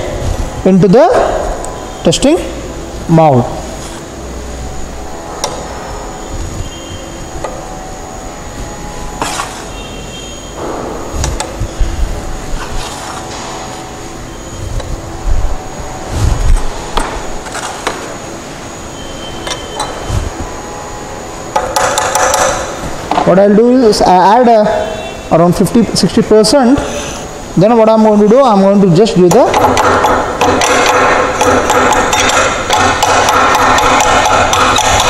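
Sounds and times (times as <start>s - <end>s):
trowel scraping and knocking metal: 9.2s - 9.7s.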